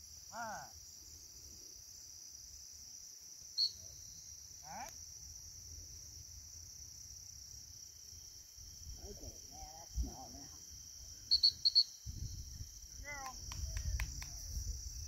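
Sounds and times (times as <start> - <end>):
crickets chirping: 0.0 - 15.0
wind rumble on microphone: 12.0 - 15.0.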